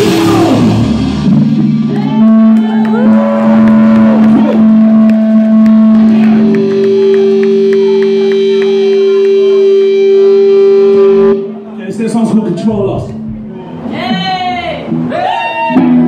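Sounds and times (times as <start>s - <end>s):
electric guitar feedback howling: 0.0s - 11.7s.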